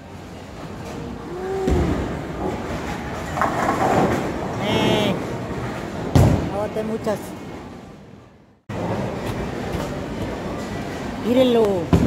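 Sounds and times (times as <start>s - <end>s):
bowling balls rolling: 0.6s - 6.5s.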